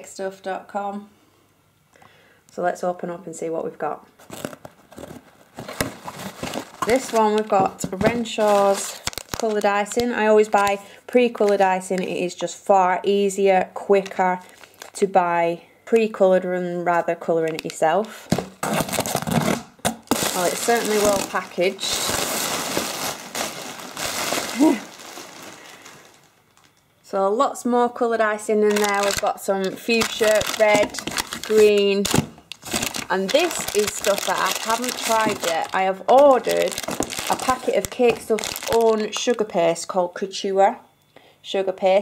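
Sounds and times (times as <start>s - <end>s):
tape tearing: 4.2s - 10.1s, 17.6s - 26.7s, 28.6s - 29.3s, 29.9s - 39.0s
cardboard and packing rustling: 4.2s - 10.8s, 14.4s - 15.0s, 17.6s - 26.8s, 28.6s - 39.4s.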